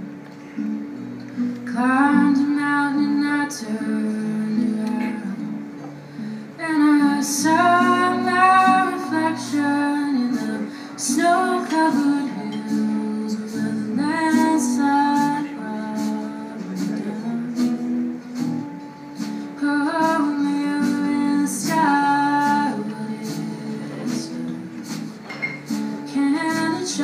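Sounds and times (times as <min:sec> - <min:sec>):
strummed acoustic guitar: 0:00.0 - 0:27.0
woman singing: 0:01.6 - 0:05.7, 0:06.5 - 0:18.6, 0:19.2 - 0:27.0
drums and percussion: 0:12.6 - 0:27.0.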